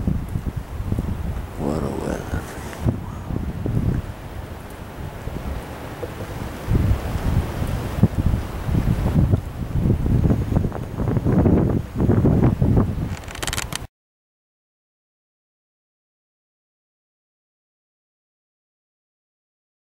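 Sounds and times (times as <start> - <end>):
wind buffeting microphone: 0.0 - 13.9.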